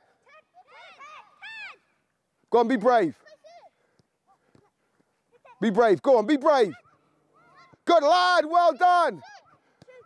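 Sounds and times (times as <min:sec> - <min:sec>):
children shouting: 0:00.2 - 0:02.0, 0:06.6 - 0:10.0.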